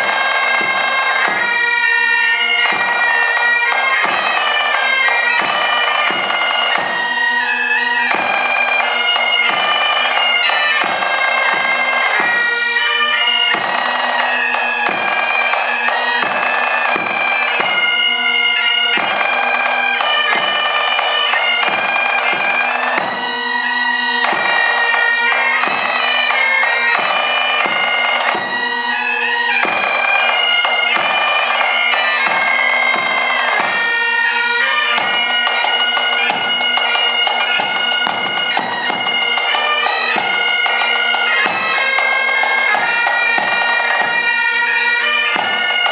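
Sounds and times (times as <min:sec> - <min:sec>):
bagpipes playing melody: 0:00.0 - 0:45.9.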